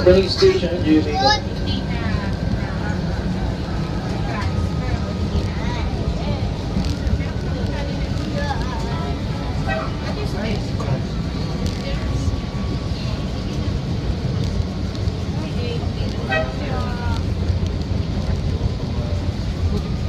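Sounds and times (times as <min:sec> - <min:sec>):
faint voices: 0:00.0 - 0:20.0
train rumbling: 0:00.0 - 0:20.0.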